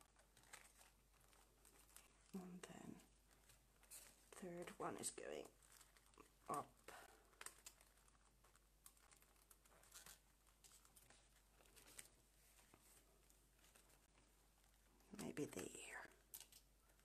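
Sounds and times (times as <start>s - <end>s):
paper pages rustling: 0.0s - 15.2s.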